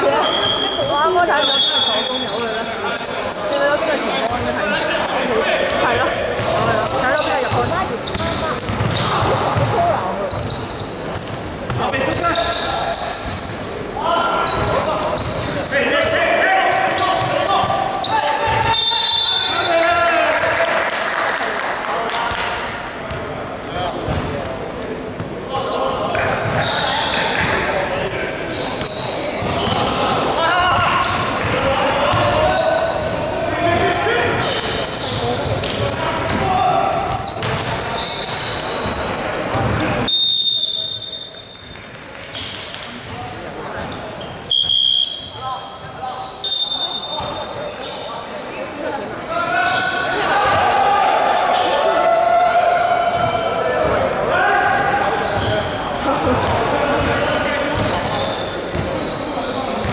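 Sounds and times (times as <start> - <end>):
sneaker squeaks on floor: 0.0 - 19.8, 23.1 - 24.6, 25.2 - 50.8, 55.2 - 59.9
basketball bouncing: 6.4 - 10.6, 24.0 - 24.3, 30.6 - 32.5, 34.4 - 36.5, 37.1 - 37.7, 38.3 - 40.0, 58.7 - 59.0.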